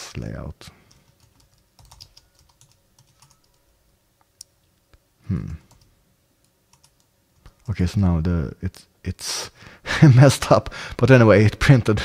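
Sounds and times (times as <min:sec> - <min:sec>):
typing on computer keyboard: 0:00.9 - 0:03.6, 0:06.7 - 0:07.7.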